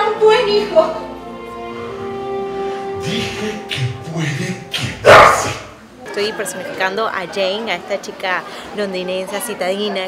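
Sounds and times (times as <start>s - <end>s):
low voiced sounds: 3.0s - 5.9s.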